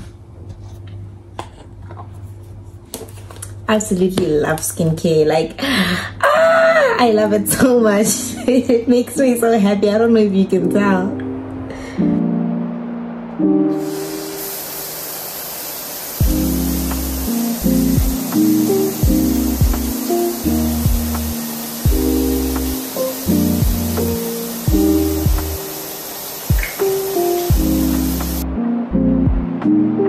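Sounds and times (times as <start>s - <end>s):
shower spray hissing: 13.6s - 28.6s
background music with bass: 16.2s - 25.6s, 27.5s - 30.0s.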